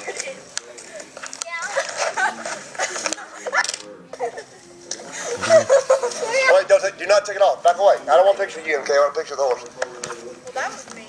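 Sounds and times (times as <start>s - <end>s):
voices talking and laughing: 0.0s - 11.0s.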